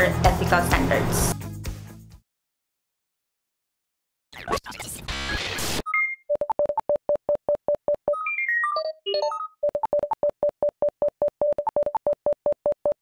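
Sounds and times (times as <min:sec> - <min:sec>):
rapid electronic beeps: 0:04.4 - 0:06.9.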